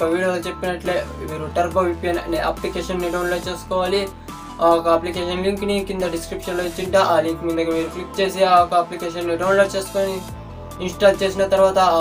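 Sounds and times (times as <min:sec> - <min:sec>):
background music: 0:00.0 - 0:12.0
man talking: 0:00.0 - 0:12.0.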